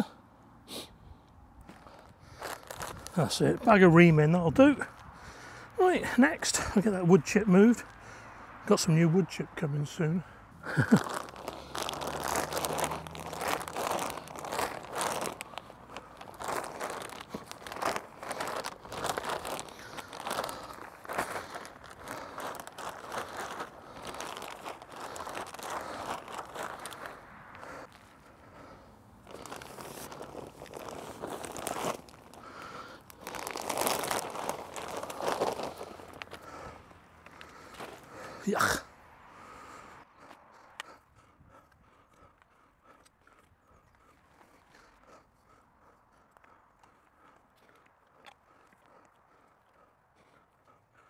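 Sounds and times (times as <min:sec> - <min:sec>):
plastic sacks crinkling: 0:02.4 - 0:03.8, 0:10.6 - 0:27.2, 0:29.2 - 0:36.5.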